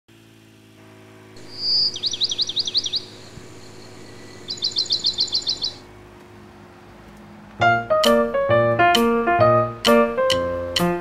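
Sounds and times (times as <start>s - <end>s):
faint low hum: 1.4s - 5.9s
songbird singing: 1.4s - 5.9s.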